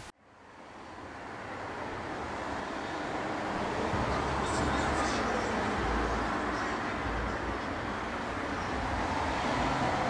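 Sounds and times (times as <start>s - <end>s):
outdoor background rush: 0.0s - 10.0s.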